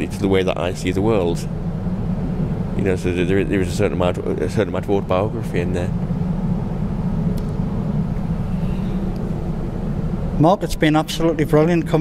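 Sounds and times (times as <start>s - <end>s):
faint steady hum: 0.0s - 12.0s
low background rumble: 0.0s - 12.0s.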